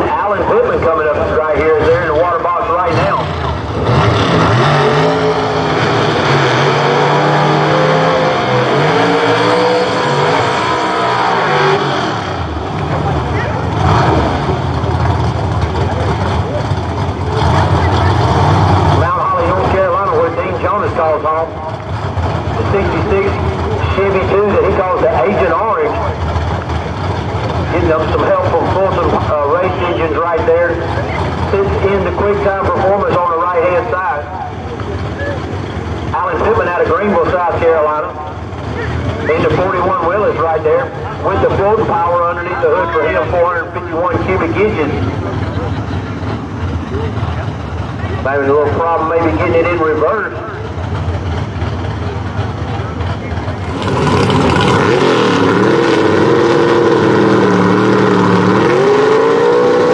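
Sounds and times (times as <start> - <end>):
drag car engines revving: 0.0 - 59.9.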